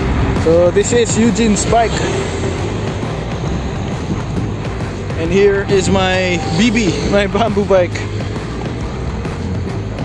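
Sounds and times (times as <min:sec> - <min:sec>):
background music: 0:00.0 - 0:10.0
low outdoor rumble: 0:00.0 - 0:10.0.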